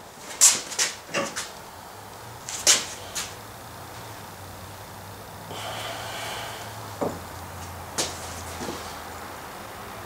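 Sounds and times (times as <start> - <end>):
person exhaling breathily: 5.5 - 7.0.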